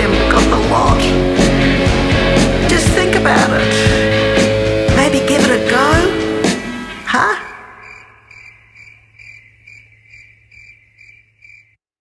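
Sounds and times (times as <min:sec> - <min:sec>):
cricket chirping: 0:07.3 - 0:11.8.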